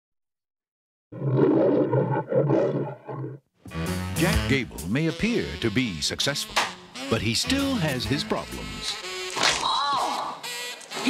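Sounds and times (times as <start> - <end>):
lion roaring: 1.1 - 3.4
music: 3.7 - 11.0.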